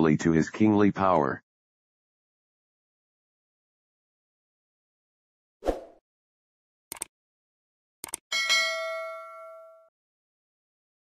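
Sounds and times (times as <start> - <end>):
mouse clicks: 6.9 - 7.1
notification bell ding: 8.3 - 9.9.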